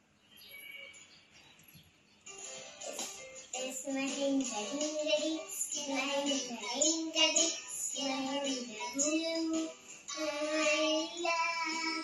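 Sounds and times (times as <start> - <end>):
music: 2.2 - 12.0
girl singing: 3.6 - 12.0.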